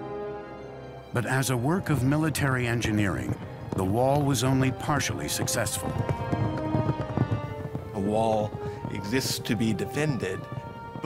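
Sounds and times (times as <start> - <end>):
background music with held tones: 0.0 - 11.0
horse hoofbeats: 1.2 - 11.0.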